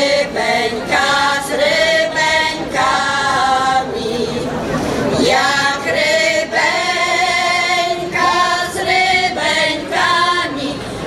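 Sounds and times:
women's choir singing unaccompanied: 0.0 - 11.0.

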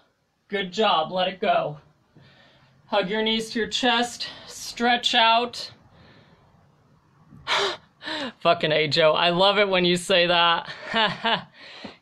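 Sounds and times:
person gasping: 7.4 - 8.4, 11.5 - 12.0.

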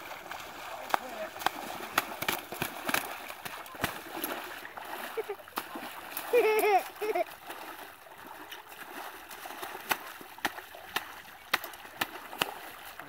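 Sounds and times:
water splashing and sloshing: 0.0 - 13.0.

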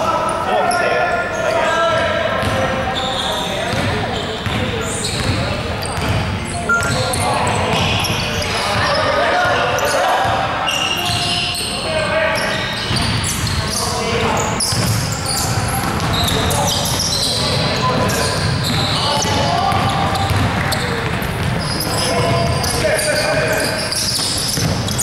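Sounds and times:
sneakers squeaking: 0.0 - 25.0
basketball dribbling on wooden floor: 18.0 - 21.6, 24.5 - 25.0.

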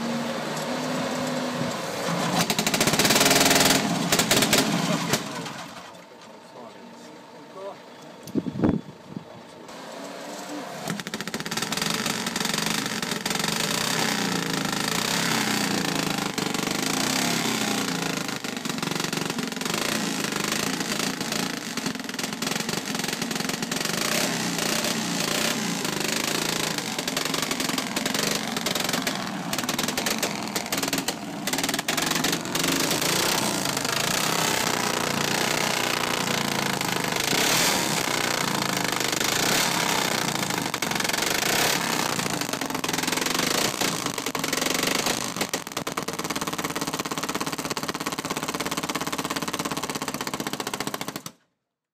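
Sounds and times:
motorcycle engine revving: 0.0 - 6.0, 9.7 - 51.2
wheel spinning on roller: 2.3 - 5.3, 10.9 - 51.2.

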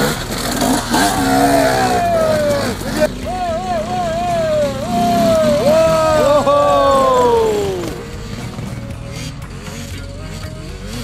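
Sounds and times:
dirt bike engine revving: 0.0 - 11.0.

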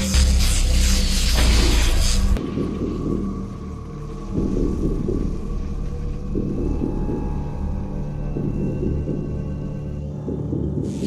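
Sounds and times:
low ominous rumbling drone: 1.4 - 11.0
steady low tones: 1.5 - 11.0.

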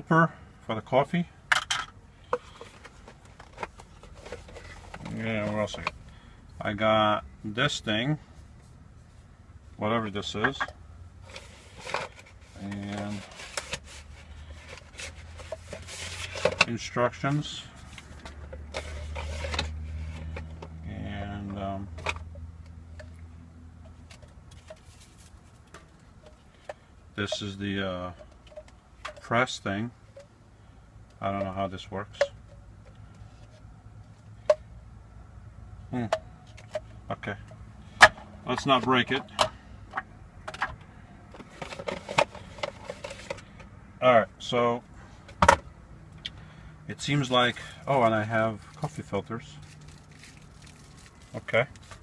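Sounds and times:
low steady hum: 0.0 - 52.0
person speaking: 9.8 - 10.7, 12.5 - 13.5, 38.4 - 39.4.

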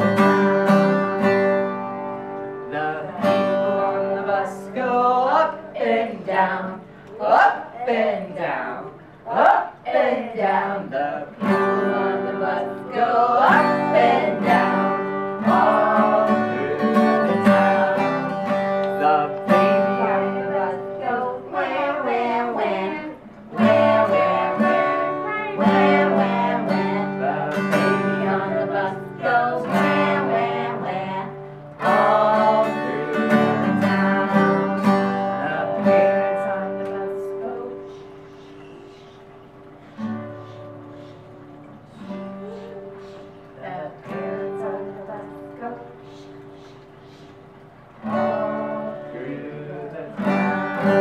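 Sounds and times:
acoustic guitar strumming: 0.0 - 51.0.

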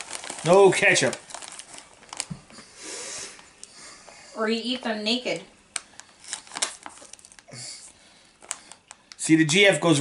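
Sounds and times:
plastic chip bag crinkling: 0.0 - 3.8, 5.7 - 10.0.

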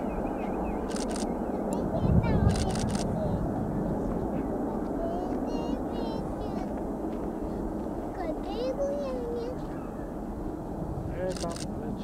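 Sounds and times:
distant jet engines rumbling: 0.0 - 12.0.

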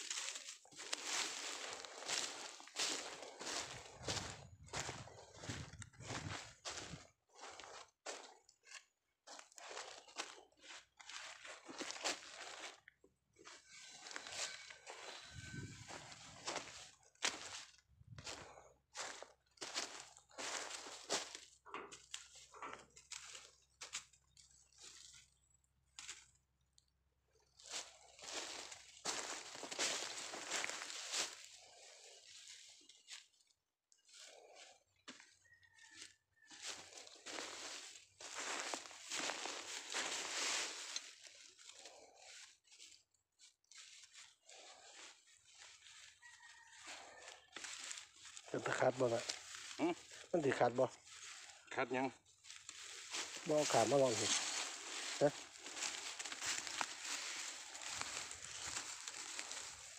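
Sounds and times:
footsteps crunching through dry leaves: 0.0 - 25.4, 27.4 - 33.4, 34.0 - 59.9.

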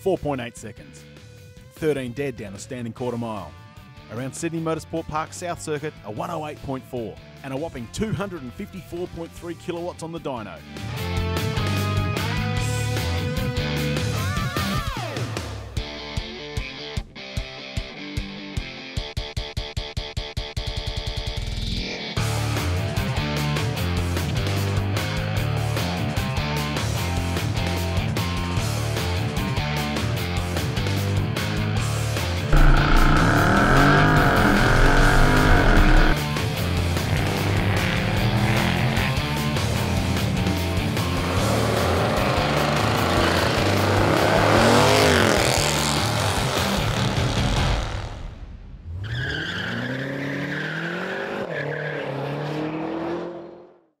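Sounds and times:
music: 0.0 - 48.8
car engine accelerating hard: 32.5 - 48.2, 50.2 - 53.9
tyres squealing: 32.6 - 36.2.

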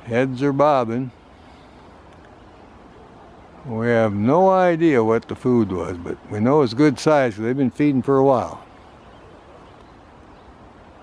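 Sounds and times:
man speaking: 0.0 - 1.2, 3.6 - 8.6
faint outdoor background noise: 0.0 - 11.0.

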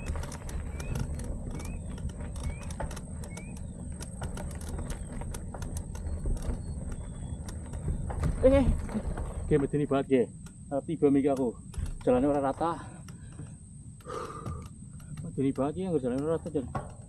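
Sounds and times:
bike rumbling over dirt: 0.0 - 10.4
bike rattling clicks: 0.0 - 17.0.

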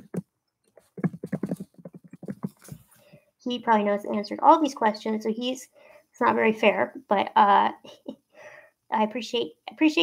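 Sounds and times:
rapid light taps: 0.0 - 3.0.

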